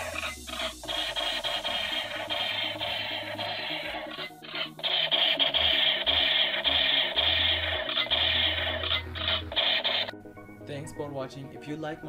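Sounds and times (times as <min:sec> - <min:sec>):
toy gun machine-gun sound effect: 0:00.0 - 0:10.1.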